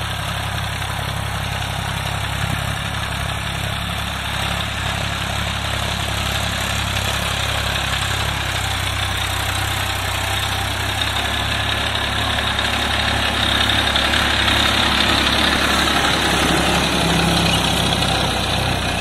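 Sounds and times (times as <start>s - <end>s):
tractor diesel engine under load: 0.0s - 19.0s.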